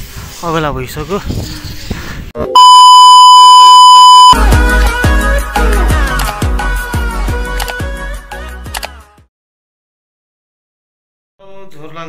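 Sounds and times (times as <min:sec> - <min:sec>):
high test tone beep: 0:02.5 - 0:04.4
music with heavy bass beat: 0:04.4 - 0:07.5.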